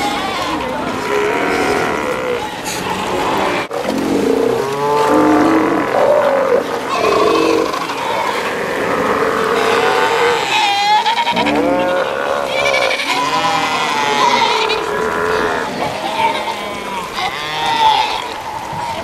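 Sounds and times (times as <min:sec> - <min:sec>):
sea lion pups bleating: 0:00.0 - 0:19.0
sea lions lowing: 0:00.0 - 0:19.0.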